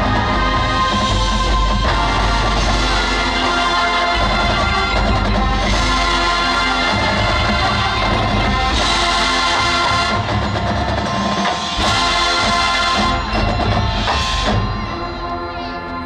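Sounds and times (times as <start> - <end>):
marching band playing: 0.0 - 16.0.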